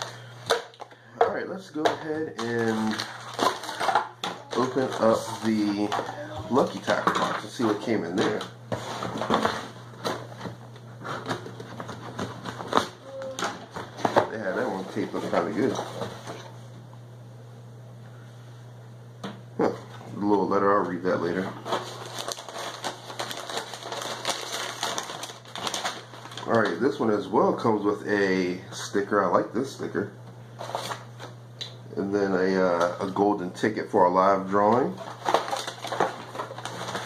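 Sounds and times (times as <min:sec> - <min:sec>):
cardboard and tape crackling: 0:00.0 - 0:16.5, 0:19.6 - 0:27.2, 0:30.6 - 0:31.4, 0:34.4 - 0:37.0
low steady hum: 0:00.0 - 0:37.0
packaging rustling and crinkling: 0:01.8 - 0:16.4, 0:21.6 - 0:27.0, 0:30.6 - 0:31.3, 0:34.9 - 0:37.0
cardboard cracking: 0:02.4 - 0:07.0, 0:21.6 - 0:26.8, 0:35.0 - 0:37.0.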